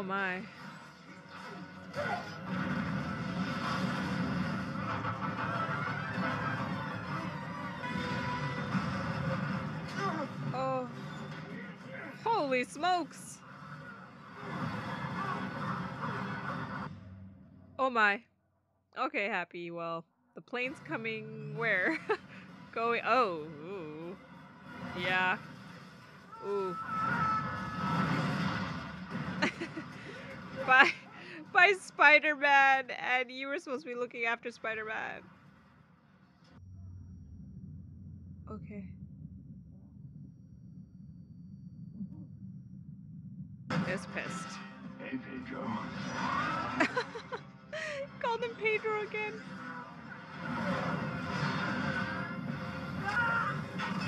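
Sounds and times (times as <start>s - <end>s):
dramatic film score: 0.0s - 18.3s, 20.1s - 54.0s
rumbling and scraping wreckage: 0.5s - 12.0s.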